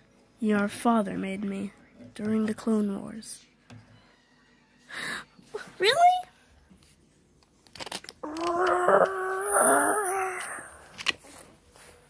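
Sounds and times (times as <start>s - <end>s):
voice holding long tone: 8.2s - 10.8s.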